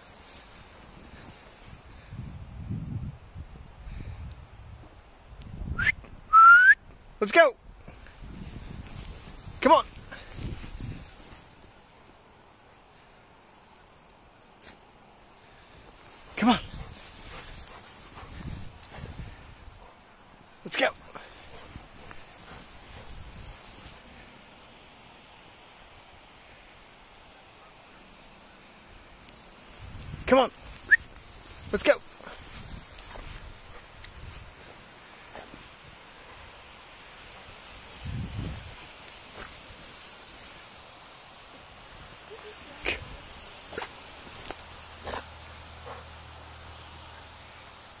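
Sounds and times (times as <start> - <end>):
crunching through powder snow: 0.0 - 2.2, 7.9 - 11.7, 15.6 - 19.8, 20.5 - 24.2, 29.4 - 40.8
dog plowing through snow: 15.9 - 19.6, 21.0 - 24.0.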